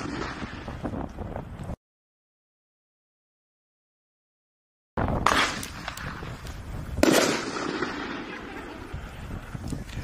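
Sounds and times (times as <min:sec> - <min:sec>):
firework bang: 0:00.0 - 0:00.9, 0:07.0 - 0:08.4
rumble after firework: 0:00.0 - 0:01.8, 0:05.0 - 0:10.0.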